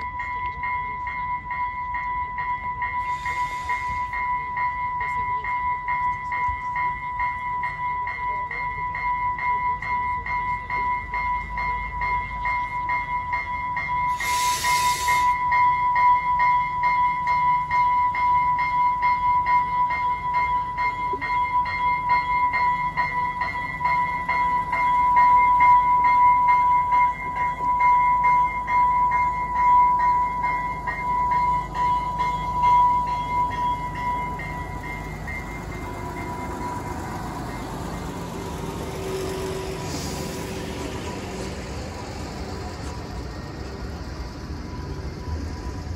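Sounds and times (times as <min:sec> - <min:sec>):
rapidly pulsing bell: 0:00.0 - 0:14.4, 0:15.3 - 0:45.9
diesel railcar engine: 0:00.0 - 0:45.9
air hiss: 0:03.1 - 0:04.1, 0:14.1 - 0:15.4.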